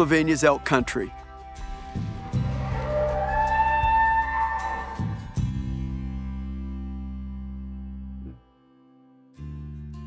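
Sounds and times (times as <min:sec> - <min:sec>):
soft background music: 0:00.0 - 0:08.4
elk bugling: 0:01.7 - 0:05.8.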